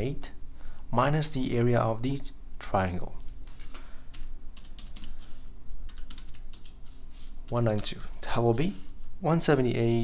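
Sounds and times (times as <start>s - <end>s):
calculator keys clicking: 4.1s - 5.2s, 5.9s - 6.8s.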